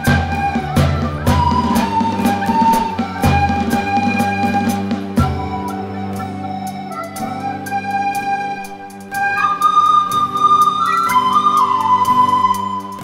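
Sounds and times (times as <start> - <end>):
electronic keyboard accompaniment: 0.0 - 13.0
recorder ensemble playing: 0.0 - 13.0.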